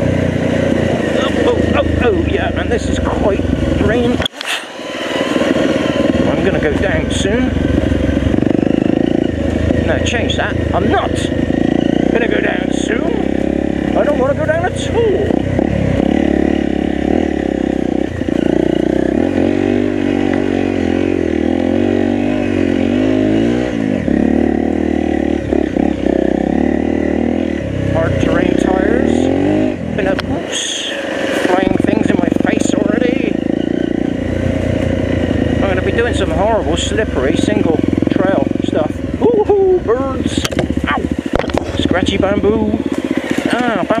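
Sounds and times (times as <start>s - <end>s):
motorcycle engine revving: 0.0s - 44.0s.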